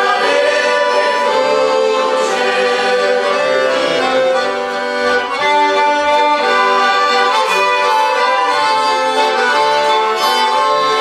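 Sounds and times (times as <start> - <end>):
group singing a christian song: 0.0 - 4.9
accordions: 0.0 - 11.0
violin: 0.0 - 11.0.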